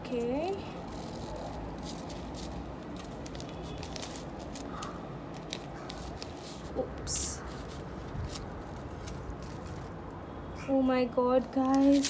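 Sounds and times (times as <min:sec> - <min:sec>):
packaging rustling: 0:00.4 - 0:06.8, 0:07.4 - 0:10.0, 0:11.6 - 0:12.0.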